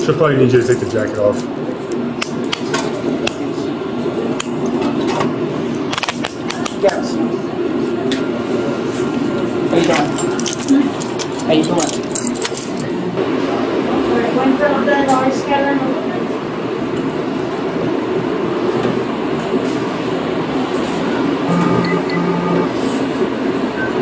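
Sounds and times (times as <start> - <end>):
handcuffs clinking and clicking: 9.9 - 12.9.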